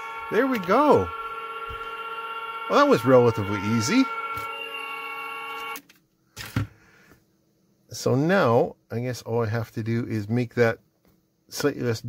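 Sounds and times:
electronic goal horn chord: 0.0 - 5.8.

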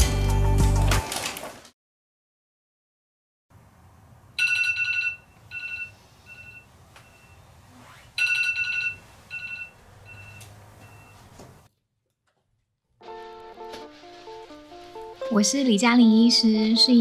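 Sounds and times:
electronic alarm beeping: 5.5 - 7.4, 8.2 - 11.2.

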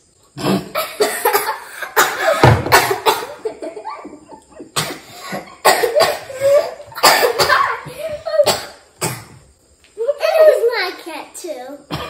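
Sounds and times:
girl coughing: 0.4 - 3.5, 4.8 - 9.4
children laughing: 0.7 - 8.9, 10.0 - 11.2.

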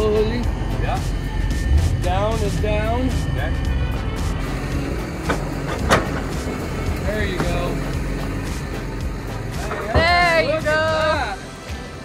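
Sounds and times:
excavator diesel engine running: 0.0 - 11.8.

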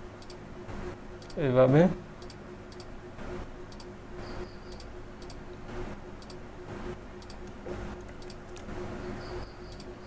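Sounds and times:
faint electrical hum: 0.0 - 10.0
computer mouse clicks: 0.2 - 0.4, 1.2 - 1.4, 2.2 - 2.9, 3.7 - 3.9, 4.7 - 5.4, 6.2 - 6.4, 7.2 - 8.7, 9.7 - 10.0.

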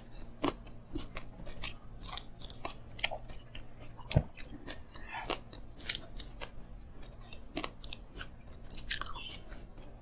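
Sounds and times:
chewing food: 0.0 - 10.0.

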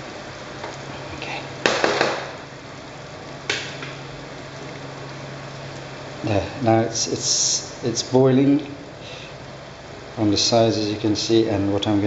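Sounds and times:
sauce bubbling in a frying pan: 0.0 - 0.9, 1.5 - 11.5
sharp knocks: 1.6 - 2.4.

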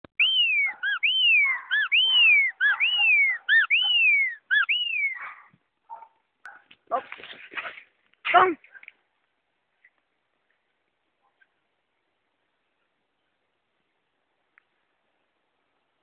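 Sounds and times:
scuffing and rustling: 6.6 - 8.2.

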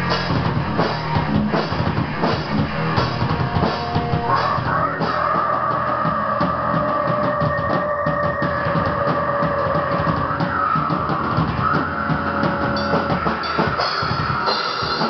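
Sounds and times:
bass guitar: 0.0 - 15.0
drumming: 0.0 - 15.0.

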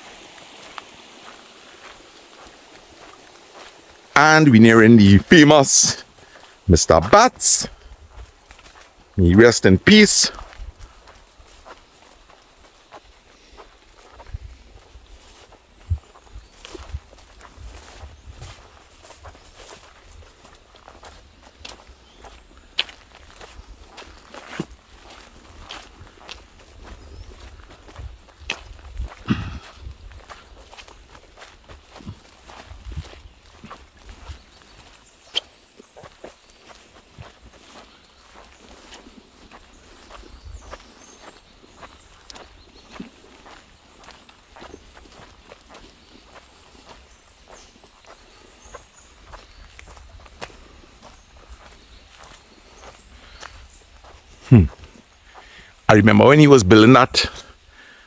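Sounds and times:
footsteps on dirt and grass: 0.0 - 57.8.

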